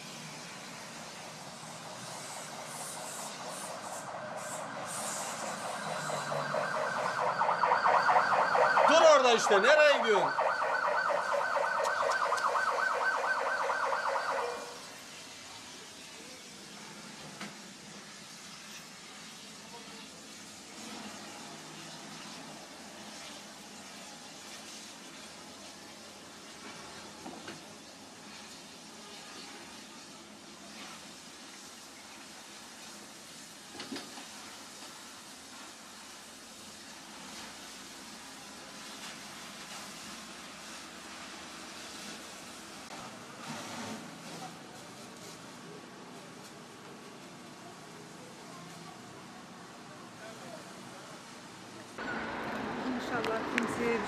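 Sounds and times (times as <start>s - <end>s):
faint background noise: 0.0s - 54.0s
warbling siren: 3.4s - 14.9s.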